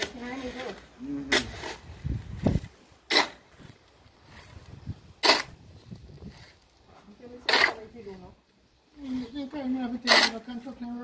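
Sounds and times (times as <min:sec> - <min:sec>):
shovel scraping gravel mix: 0:00.1 - 0:06.8.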